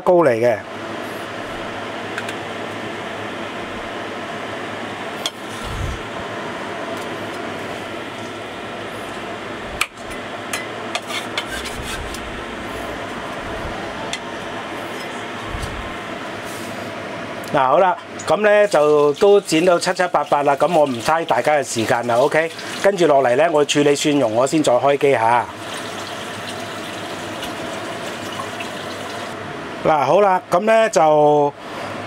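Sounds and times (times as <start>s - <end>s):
fan-like hum: 0.0s - 32.0s.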